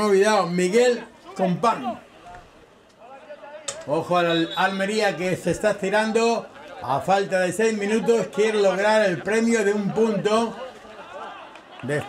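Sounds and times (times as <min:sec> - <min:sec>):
man speaking loudly: 0:00.0 - 0:02.1, 0:03.1 - 0:10.6.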